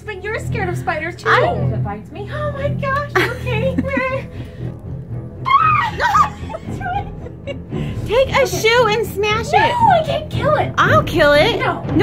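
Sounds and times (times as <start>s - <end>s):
background music: 0.0s - 12.0s
woman squealing in fright: 5.4s - 6.6s.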